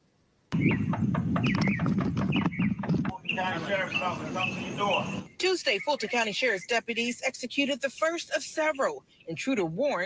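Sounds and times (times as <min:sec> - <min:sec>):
small birds chirping: 0:00.5 - 0:10.0
knocking on a door: 0:00.6 - 0:03.2.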